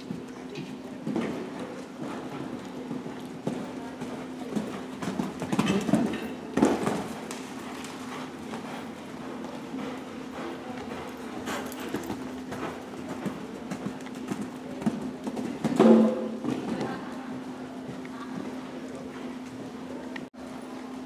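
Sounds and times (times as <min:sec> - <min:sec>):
horse hoofbeats on sand: 0:00.0 - 0:16.7
steady low hum: 0:00.0 - 0:21.0.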